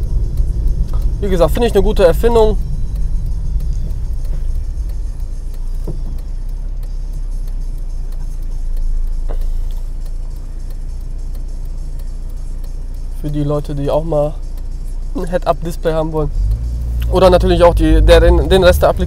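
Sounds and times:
car engine and road rumble: 0.0s - 19.0s
engine idling hum: 0.0s - 19.0s.

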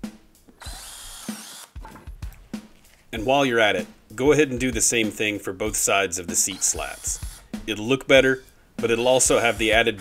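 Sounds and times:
cordless drill boring into wood: 0.6s - 1.8s, 6.5s - 7.5s.

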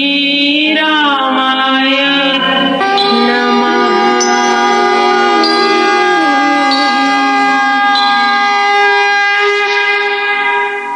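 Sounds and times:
harmonium playing chords: 2.0s - 10.6s.

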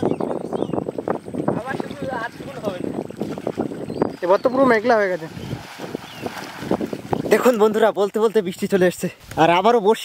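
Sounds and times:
person wading through water: 0.9s - 7.8s.

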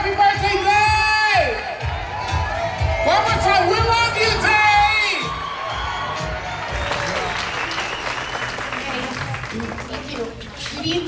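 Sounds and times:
man shouting and singing into microphone: 0.0s - 1.9s, 2.8s - 5.4s
crowd noise: 0.0s - 11.0s
party music over loudspeakers: 0.0s - 11.0s
people clapping: 5.2s - 11.0s.

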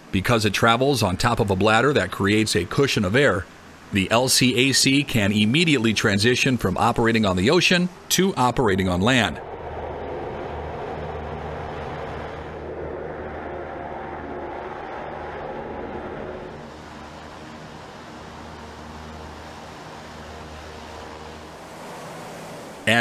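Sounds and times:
hovercraft engines droning: 0.0s - 23.0s
rush of air: 9.4s - 19.7s.

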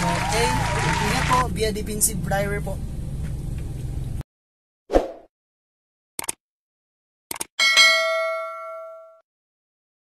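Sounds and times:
quick double clicks: 6.2s - 6.4s, 7.3s - 7.5s
bright bell ding: 7.6s - 9.2s.

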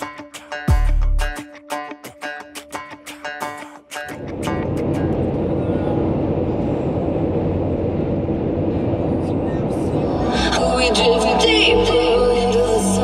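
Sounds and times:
guitar background music: 0.0s - 5.8s
road and engine noise in car: 4.2s - 12.9s.

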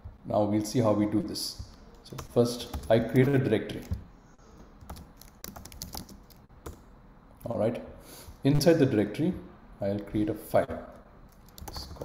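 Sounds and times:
typing on a keyboard: 4.8s - 6.8s, 11.3s - 12.0s.

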